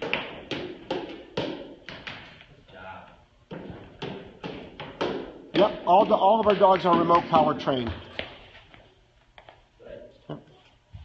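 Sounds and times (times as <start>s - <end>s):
sharp knocks on floor with echo: 0.0s - 2.4s, 3.5s - 8.3s.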